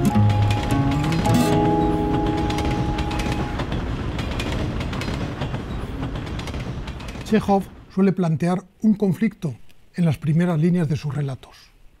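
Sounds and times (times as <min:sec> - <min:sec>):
guitar tune: 0:00.0 - 0:03.7
train rumbling on track: 0:00.0 - 0:08.0.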